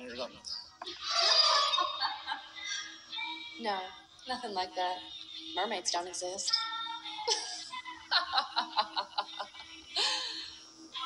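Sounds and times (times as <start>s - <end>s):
soft music: 0.0s - 11.0s
man laughing: 7.3s - 10.1s.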